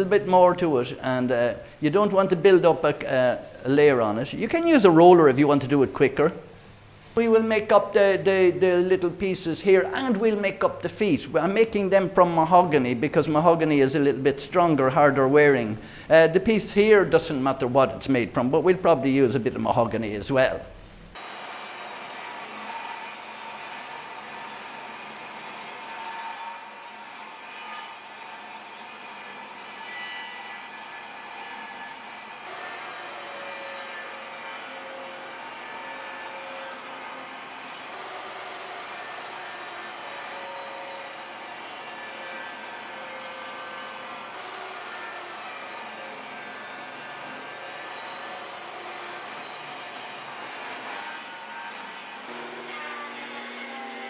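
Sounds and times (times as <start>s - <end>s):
table saw cutting wood: 52.3s - 54.0s.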